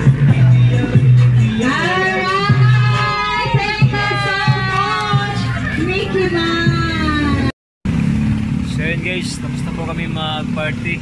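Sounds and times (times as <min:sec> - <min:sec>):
music with sung note: 0:00.0 - 0:06.9
road traffic engine rumble: 0:00.0 - 0:11.0.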